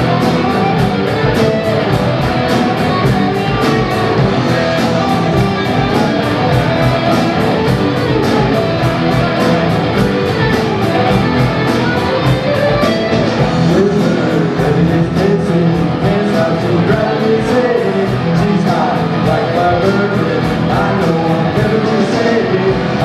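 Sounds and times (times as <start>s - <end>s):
drums: 0.0s - 23.0s
electric guitars: 0.0s - 23.0s.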